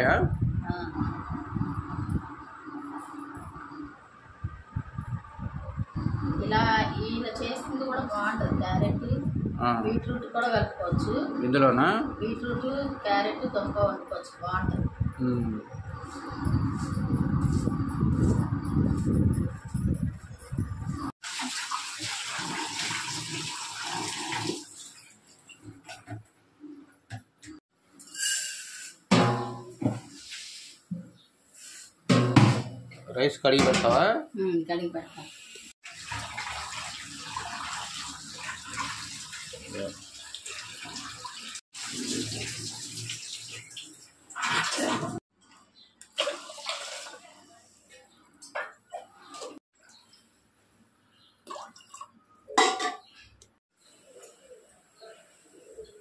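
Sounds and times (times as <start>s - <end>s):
tap water running into sink: 21.2s - 25.1s, 35.8s - 45.1s
water sloshing: 46.1s - 47.3s.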